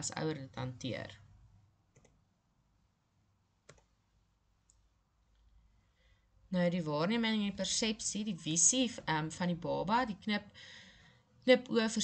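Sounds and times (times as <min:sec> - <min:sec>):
faint computer clicks: 0:01.9 - 0:02.2, 0:03.6 - 0:04.0.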